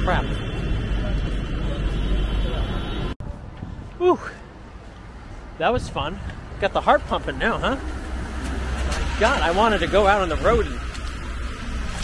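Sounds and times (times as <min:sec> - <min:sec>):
tractor diesel engines rumbling: 0:00.0 - 0:12.0.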